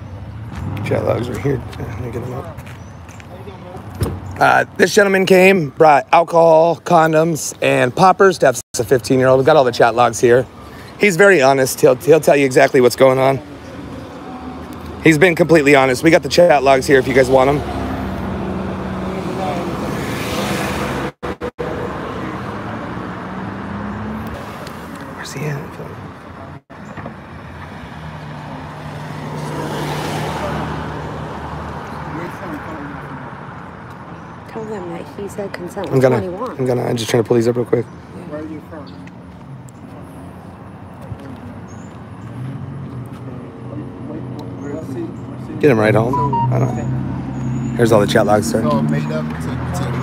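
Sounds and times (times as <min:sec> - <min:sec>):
street traffic: 0:00.0 - 0:50.0
vehicle engine hum: 0:11.8 - 0:37.1.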